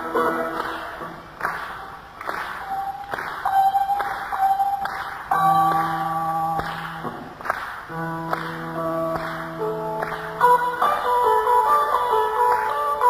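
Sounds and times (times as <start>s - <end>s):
guitar picking single notes: 2.6s - 13.0s.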